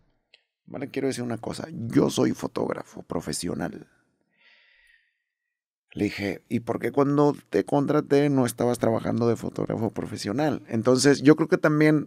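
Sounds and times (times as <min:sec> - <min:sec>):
man talking: 0:00.7 - 0:03.9, 0:05.9 - 0:12.0
short breath: 0:04.0 - 0:05.4.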